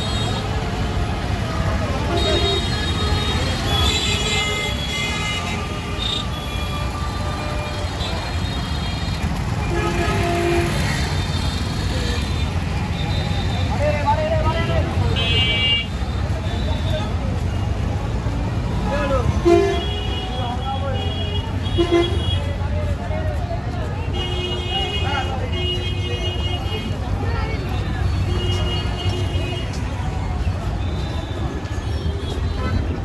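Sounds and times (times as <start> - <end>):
auto-rickshaw engines running: 0.0 - 33.0
traffic rumble: 0.0 - 33.0
vehicle horns tooting: 2.0 - 14.1, 14.7 - 17.7, 19.2 - 22.6, 30.7 - 33.0.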